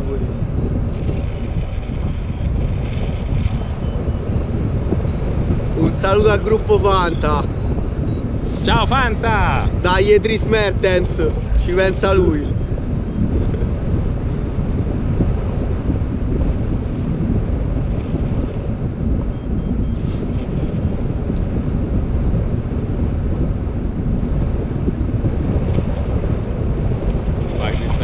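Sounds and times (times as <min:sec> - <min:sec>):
loud wind rumble on microphone: 0:00.0 - 0:28.0.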